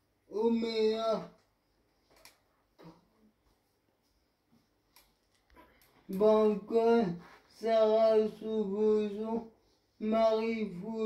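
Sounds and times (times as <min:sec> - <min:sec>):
soft faint rustle: 0:01.5 - 0:06.4, 0:07.0 - 0:07.8.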